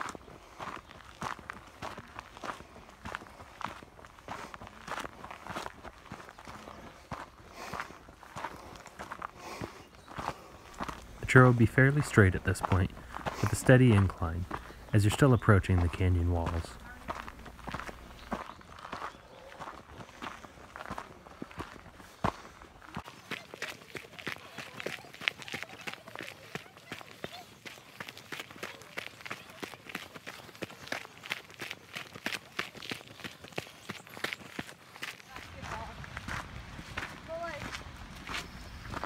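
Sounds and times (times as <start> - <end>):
footsteps on dirt and rock trail: 0.0 - 39.0.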